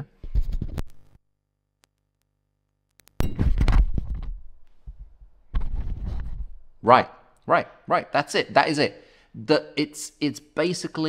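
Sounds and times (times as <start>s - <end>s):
microphone handling noise: 0.2s - 1.1s, 3.2s - 6.8s.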